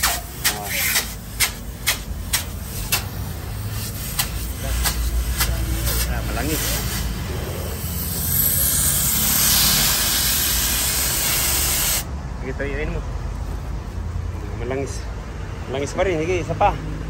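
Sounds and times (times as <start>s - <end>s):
pressurized gas hissing: 0.0s - 12.1s.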